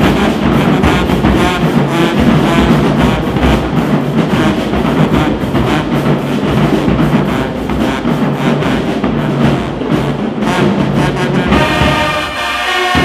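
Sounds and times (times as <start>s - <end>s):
brass playing: 0.0s - 13.0s
marching band drums: 0.0s - 13.0s.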